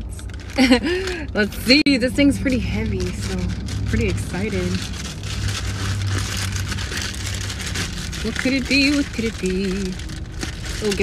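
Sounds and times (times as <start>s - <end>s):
plastic bag crinkling and tearing: 0.0s - 1.8s, 2.4s - 11.0s
steady low hum: 0.0s - 11.0s.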